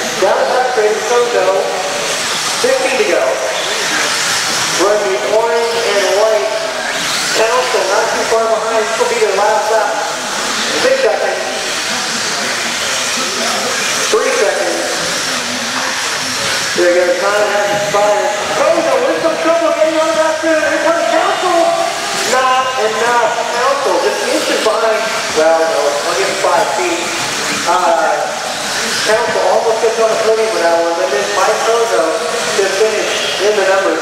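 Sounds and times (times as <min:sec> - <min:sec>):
announcer talking over pa: 0:00.0 - 0:02.0, 0:02.6 - 0:03.6, 0:04.8 - 0:10.2, 0:10.8 - 0:11.6, 0:14.1 - 0:15.1, 0:16.7 - 0:34.0.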